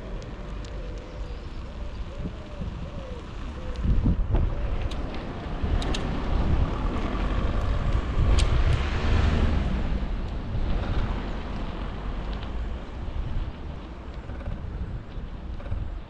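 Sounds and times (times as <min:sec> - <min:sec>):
wind buffeting microphone: 0:00.0 - 0:16.0
sharp clicks: 0:04.8 - 0:06.2.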